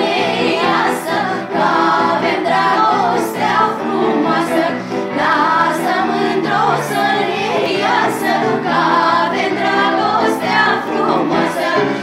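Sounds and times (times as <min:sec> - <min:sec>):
girls and women singing together: 0:00.0 - 0:12.0.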